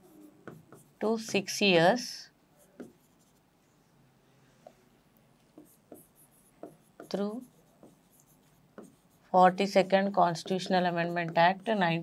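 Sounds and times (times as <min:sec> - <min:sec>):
marker pen writing on whiteboard: 0:00.0 - 0:01.8, 0:02.6 - 0:03.5, 0:05.5 - 0:12.0.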